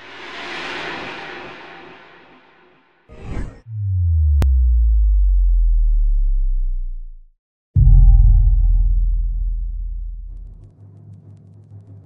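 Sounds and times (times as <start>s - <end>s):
brief whoosh: 0.0s - 3.8s
deep bass tone sliding downward: 3.6s - 10.6s
heavy low boom: 3.6s - 10.6s.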